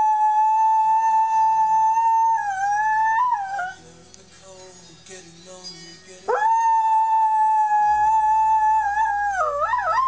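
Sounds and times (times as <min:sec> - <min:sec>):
dog howling: 0:00.0 - 0:03.8, 0:06.3 - 0:10.0
quiet music: 0:00.0 - 0:10.0.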